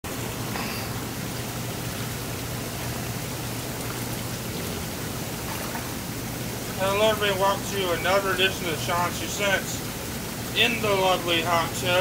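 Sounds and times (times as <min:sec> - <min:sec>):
steady low hum: 0:00.0 - 0:12.0
water churning in hot tub: 0:00.0 - 0:12.0.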